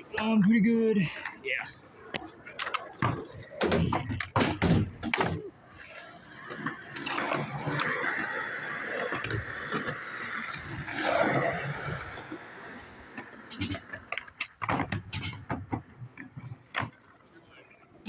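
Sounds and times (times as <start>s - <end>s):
skateboard clacking on concrete: 0.0s - 12.4s, 13.0s - 18.0s
skateboard wheels rolling on concrete: 0.0s - 18.0s.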